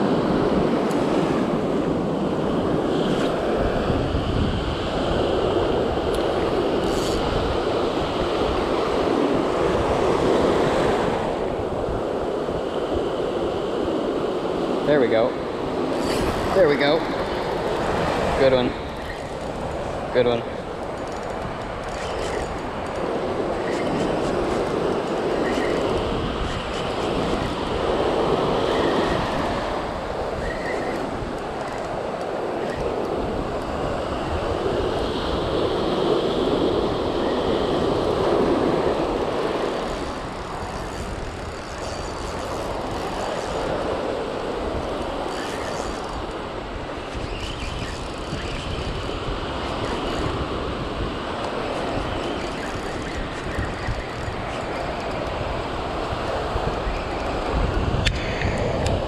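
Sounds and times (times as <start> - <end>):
ocean surf breaking: 0.0 - 59.0
wind on microphone: 0.0 - 59.0.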